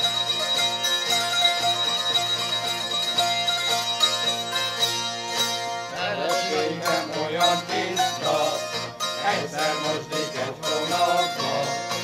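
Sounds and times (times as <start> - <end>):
ringing drone strings: 0.0 - 12.0
zithers strumming folk melody: 0.0 - 12.0.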